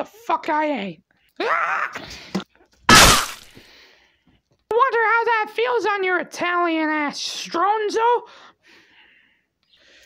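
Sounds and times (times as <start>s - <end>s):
loud crash: 2.9s - 3.5s.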